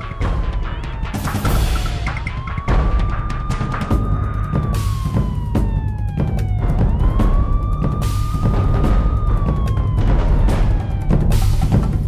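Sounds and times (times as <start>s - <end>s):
music with heavy drum hits: 0.0s - 12.0s
police siren wailing: 0.0s - 12.0s.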